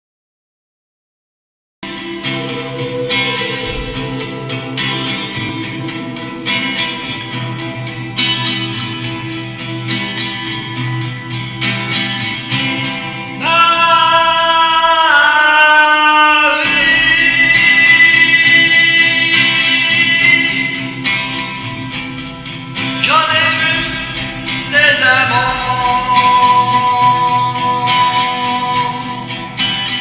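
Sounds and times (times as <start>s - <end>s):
man singing: 1.8s - 7.8s, 13.4s - 21.0s, 22.8s - 30.0s
acoustic guitar: 1.8s - 30.0s.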